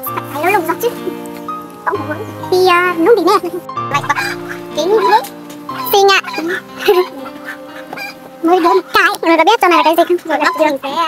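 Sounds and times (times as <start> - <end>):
background music: 0.0 - 11.0
poultry calling: 3.9 - 11.0.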